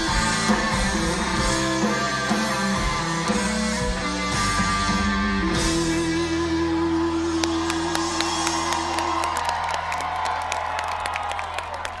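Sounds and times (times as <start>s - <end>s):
rock band chord ringing: 0.0s - 8.6s
crowd cheering and clapping: 6.3s - 12.0s.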